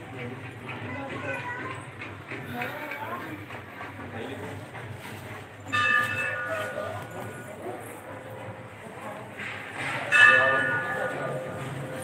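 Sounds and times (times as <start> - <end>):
bell ringing: 5.7 - 7.5, 10.1 - 11.5.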